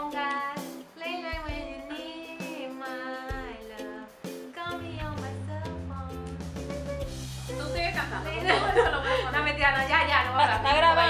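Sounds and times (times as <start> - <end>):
woman singing pop song: 0.0 - 6.5, 7.5 - 11.0
instrumental music: 0.0 - 11.0
deep bass line: 4.8 - 11.0.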